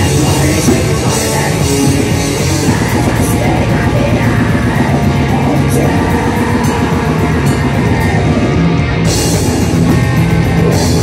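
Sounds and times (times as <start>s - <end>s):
distorted electric guitar: 0.0s - 11.0s.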